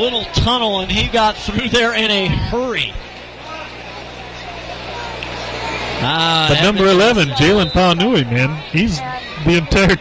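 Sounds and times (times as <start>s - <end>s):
distant voices: 0.0s - 10.0s
faint crowd noise: 0.0s - 10.0s.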